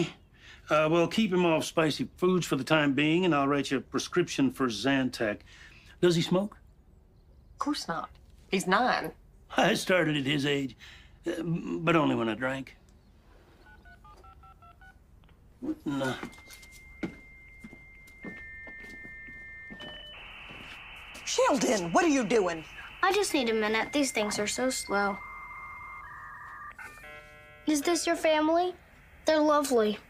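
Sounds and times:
modem chirp: 0:13.0 - 0:15.0, 0:16.3 - 0:30.0
dial-up modem tones: 0:13.6 - 0:15.0, 0:16.2 - 0:28.1
touch-tone keypad beeps: 0:13.6 - 0:15.0.

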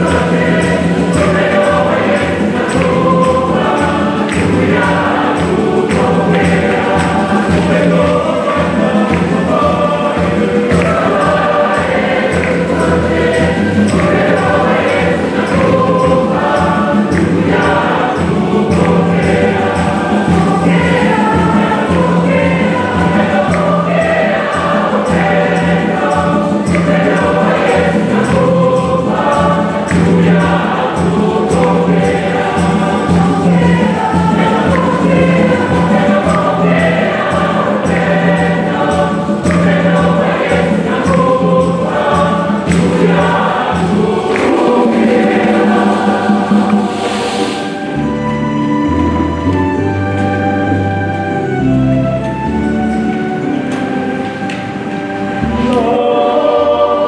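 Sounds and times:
steady beat: 0:00.0 - 0:48.0
congregation singing a hymn: 0:00.0 - 0:57.0
low accompaniment: 0:00.0 - 0:57.0.

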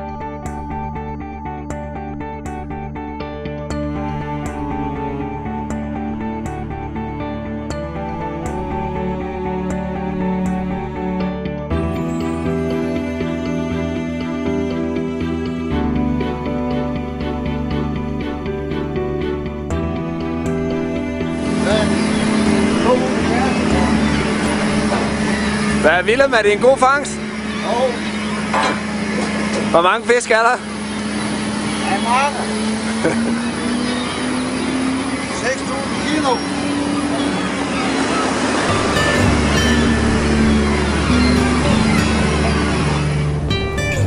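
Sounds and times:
music: 0:00.0 - 0:31.7, 0:36.3 - 0:44.0
boat engine running: 0:00.0 - 0:44.0
gulls calling: 0:21.4 - 0:30.0, 0:30.6 - 0:44.0.

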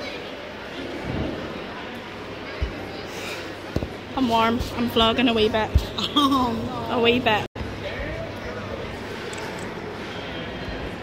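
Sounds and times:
crowded room background noise: 0:00.0 - 0:11.0.

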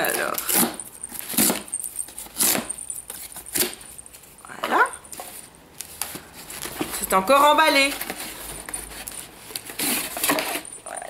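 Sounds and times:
small jingle bells jingling: 0:00.0 - 0:05.1, 0:10.2 - 0:11.0.

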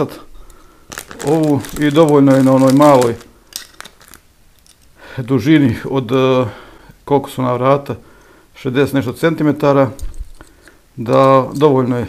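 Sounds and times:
plastic packaging rustling: 0:00.0 - 0:05.4, 0:10.0 - 0:11.9.

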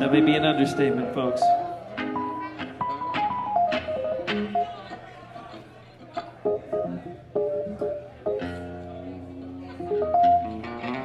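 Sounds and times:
electric guitar plucked notes: 0:00.0 - 0:04.9, 0:06.4 - 0:11.0.

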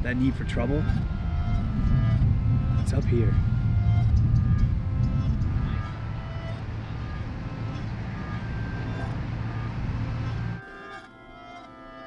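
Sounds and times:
low outdoor rumble: 0:00.0 - 0:10.6
faint sustained music notes: 0:00.0 - 0:12.0.

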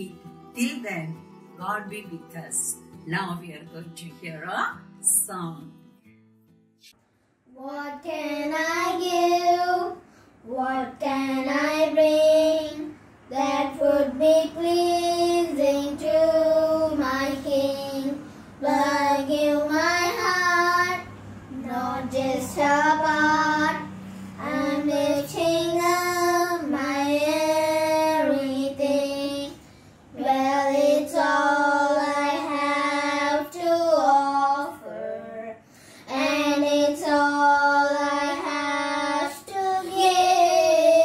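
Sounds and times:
girl and boy singing: 0:07.5 - 0:41.0.

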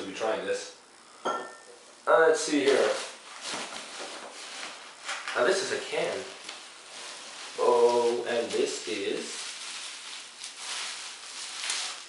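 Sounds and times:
bubble wrap rustling: 0:02.4 - 0:12.0.

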